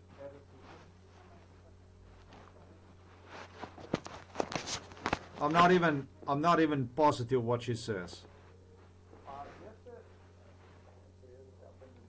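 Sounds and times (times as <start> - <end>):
faint rustling: 0.0 - 5.9, 8.1 - 12.0
low steady hum: 0.0 - 12.0.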